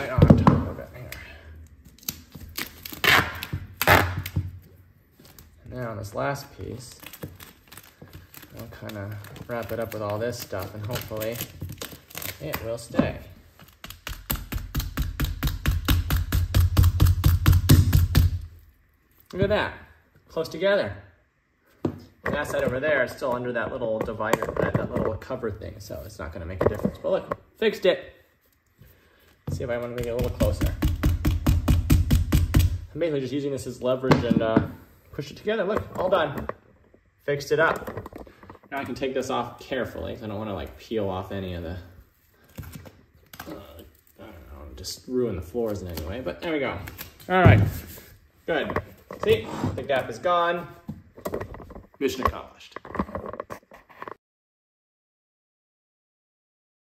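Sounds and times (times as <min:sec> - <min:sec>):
duct tape peeling off floor: 0:01.8 - 0:04.5, 0:06.8 - 0:12.9.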